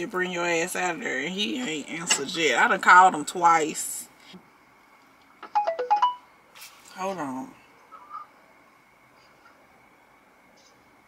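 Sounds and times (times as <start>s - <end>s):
phone electronic alert tone: 5.4s - 6.3s.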